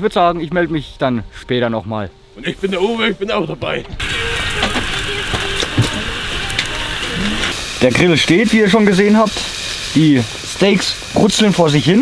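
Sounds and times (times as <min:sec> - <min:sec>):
sausages sizzling on a grill: 0:02.3 - 0:03.3, 0:04.0 - 0:12.0.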